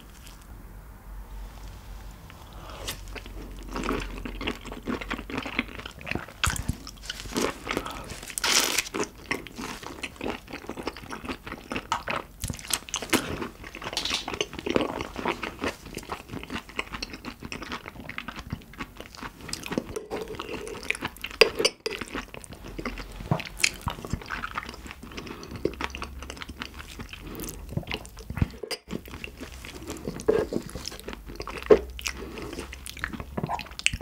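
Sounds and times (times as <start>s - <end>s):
chewing shrimp with wet crunches: 3.1s - 34.0s.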